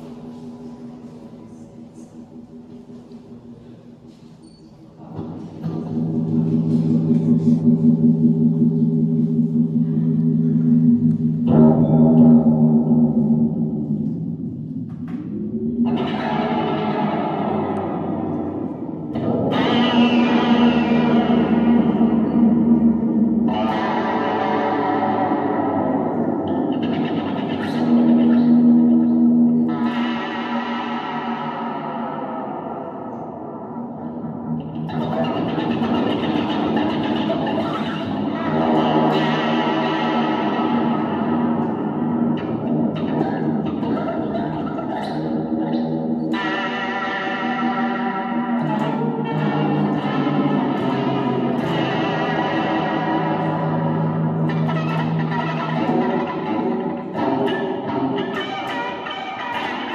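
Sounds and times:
distorted electric guitar textures: 0:00.0 - 0:59.9
low drone: 0:05.1 - 0:46.8.

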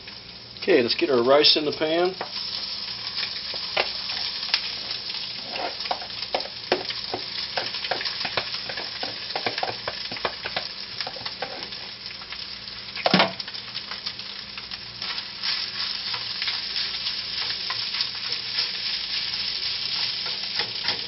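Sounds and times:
oil sizzling in a frying pan: 0:00.0 - 0:21.0.

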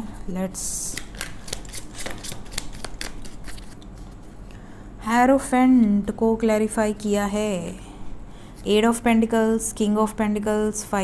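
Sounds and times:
cards being shuffled: 0:00.9 - 0:04.3.

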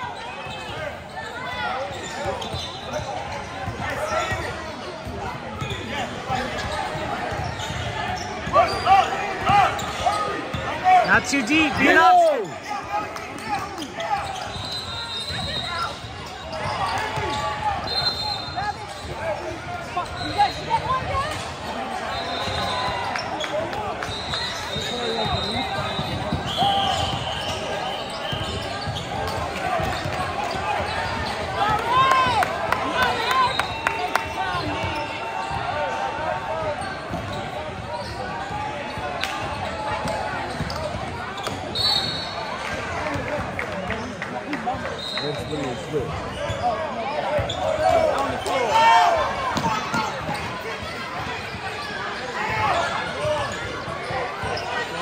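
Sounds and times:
sneakers squeaking: 0:00.0 - 0:55.0.

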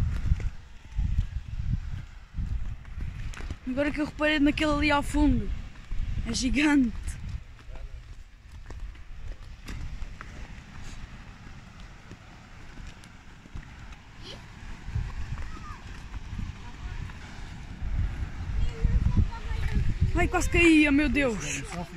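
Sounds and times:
footsteps on gritty path: 0:00.0 - 0:20.1
wind rumbling on microphone: 0:00.0 - 0:21.9.

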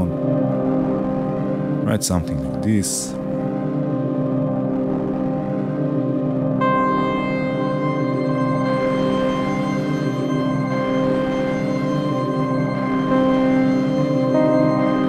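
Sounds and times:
ambient synthesizer drone with delay: 0:00.0 - 0:15.0.

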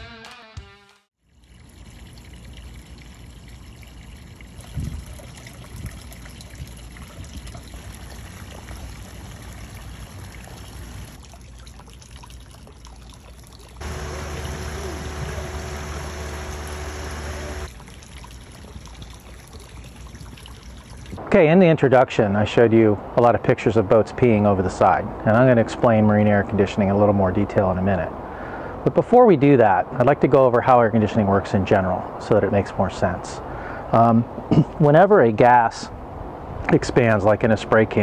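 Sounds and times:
water pouring and splashing: 0:01.2 - 0:21.2
low steady hum: 0:13.8 - 0:28.4.

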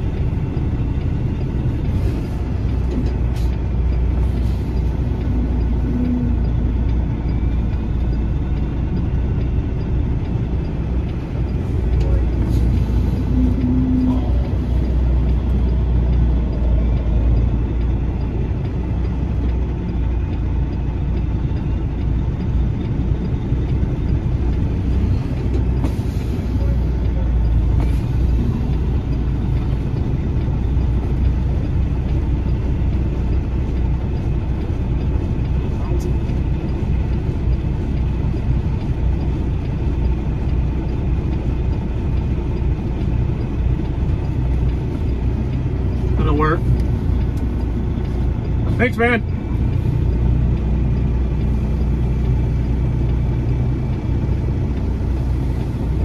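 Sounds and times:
truck engine low drone: 0:00.0 - 0:56.0.

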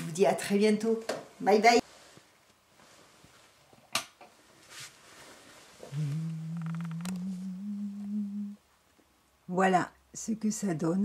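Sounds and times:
person humming: 0:05.8 - 0:08.6.

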